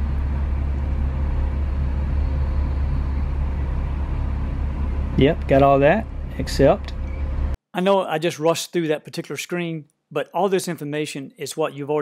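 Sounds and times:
engine idling heard inside cab: 0.0 - 7.6.

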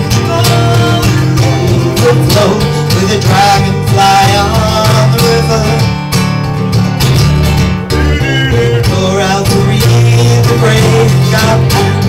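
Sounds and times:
person singing: 0.0 - 6.0, 7.9 - 12.0
acoustic guitars strummed: 0.0 - 12.0.

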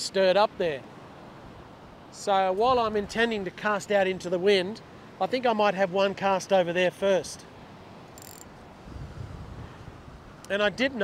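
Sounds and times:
gusty wind on microphone: 2.6 - 3.3, 8.5 - 10.4.

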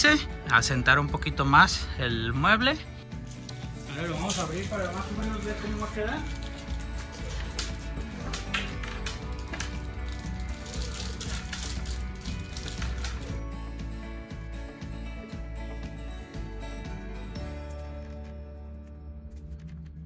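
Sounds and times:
man's voice: 0.0 - 2.9, 3.8 - 6.5
background music with beat: 0.0 - 20.0.

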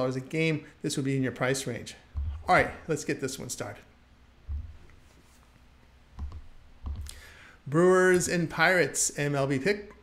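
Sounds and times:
soft clicks with low thumps: 6.2 - 7.1.

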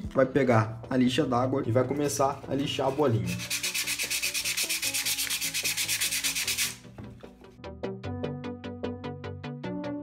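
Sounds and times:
sandpaper scraping foil ball: 2.5 - 6.8.

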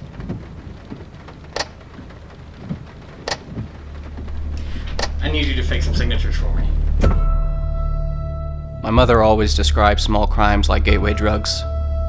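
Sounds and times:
low rumble: 0.0 - 12.0
steady rain: 0.0 - 12.0
sharp tick: 1.5 - 1.8.

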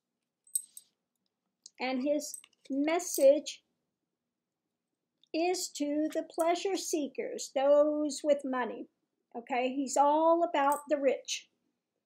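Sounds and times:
woman speaking: 1.7 - 3.6, 5.4 - 11.4.

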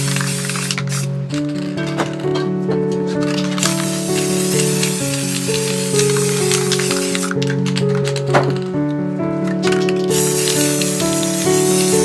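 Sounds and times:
spray paint can hissing: 0.0 - 2.0, 3.2 - 8.6, 9.5 - 12.0
background music with held notes: 0.0 - 12.0.

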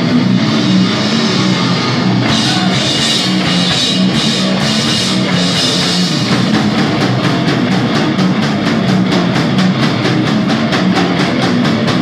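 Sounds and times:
distorted guitar and bass: 0.0 - 12.0
fast drumming: 0.0 - 12.0.

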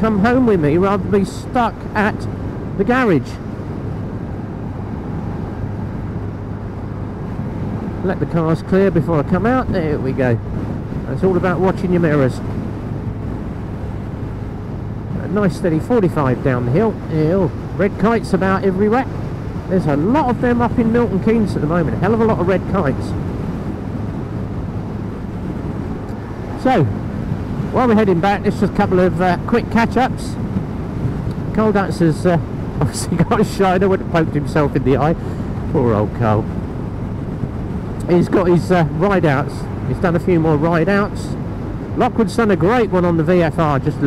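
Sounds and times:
road and wind rush: 0.0 - 44.0.

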